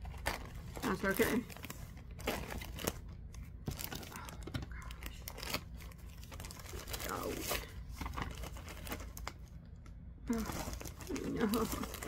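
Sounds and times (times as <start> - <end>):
packaging crinkling: 0.0 - 12.0.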